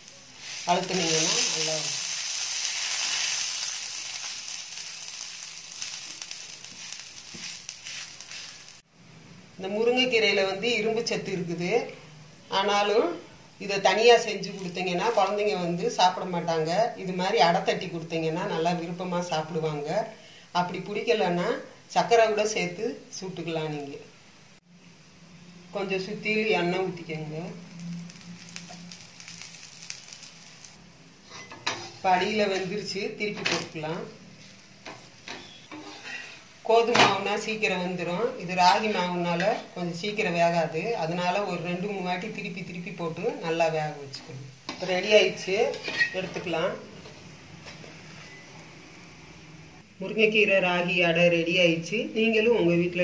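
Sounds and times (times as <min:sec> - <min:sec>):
dough sizzling on a griddle: 0:00.0 - 0:08.9, 0:13.8 - 0:16.2, 0:25.8 - 0:46.8
faint crackles: 0:27.5 - 0:30.8.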